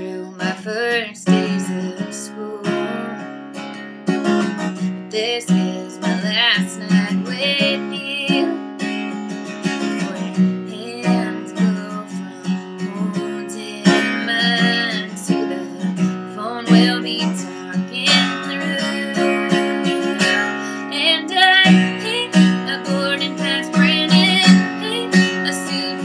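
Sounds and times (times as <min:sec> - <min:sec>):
woman singing: 0:00.0 - 0:03.4, 0:04.7 - 0:09.0, 0:09.6 - 0:26.0
acoustic guitar strumming: 0:00.0 - 0:26.0.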